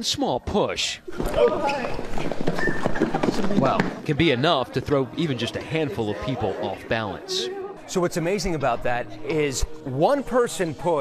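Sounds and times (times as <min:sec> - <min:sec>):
people's voices: 0:01.1 - 0:11.0.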